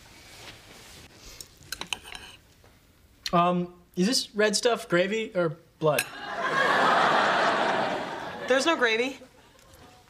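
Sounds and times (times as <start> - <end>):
cutlery clinking on plates: 1.7 - 2.4.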